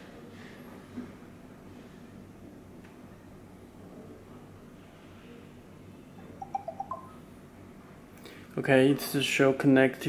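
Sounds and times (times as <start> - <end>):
electronic notification chime: 6.4 - 7.2.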